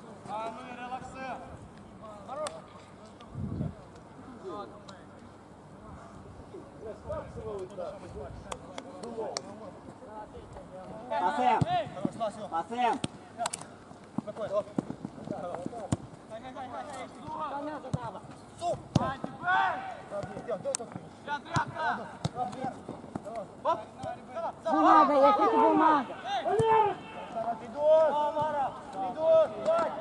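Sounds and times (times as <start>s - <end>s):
players and coaches shouting: 19.0s - 20.1s, 24.3s - 30.0s.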